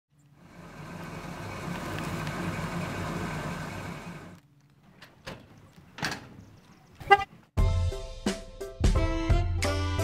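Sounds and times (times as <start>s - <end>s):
truck engine idling: 0.2s - 4.4s.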